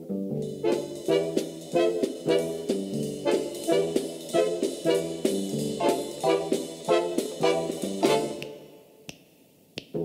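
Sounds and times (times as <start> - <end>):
brass chord: 0.0 - 9.0
dance band playing: 0.4 - 8.7.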